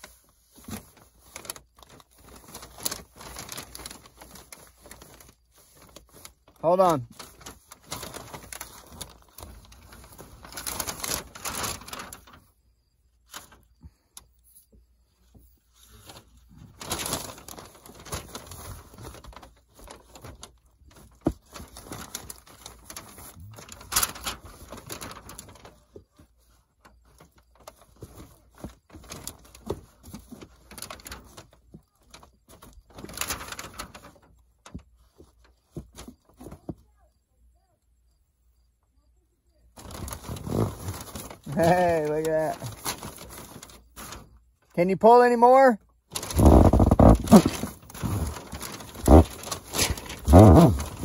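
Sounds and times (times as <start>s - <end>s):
gas line rustling and scraping: 46.1s - 51.0s.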